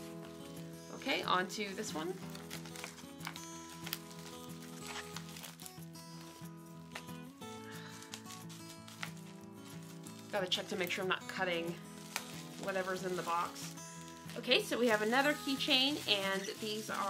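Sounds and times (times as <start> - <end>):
soft background music: 0.0 - 17.0
plastic packet crinkling: 1.9 - 17.0.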